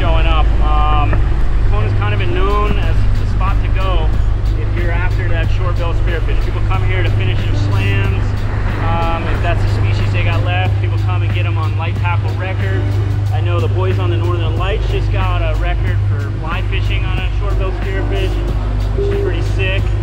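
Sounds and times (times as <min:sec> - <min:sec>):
background music with beat: 0:00.0 - 0:20.0
man talking: 0:00.0 - 0:20.0.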